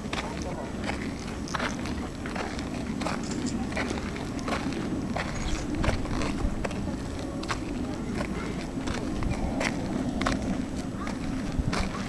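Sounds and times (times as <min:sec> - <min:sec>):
footsteps walking: 0:00.0 - 0:12.0
low background noise: 0:00.0 - 0:12.0.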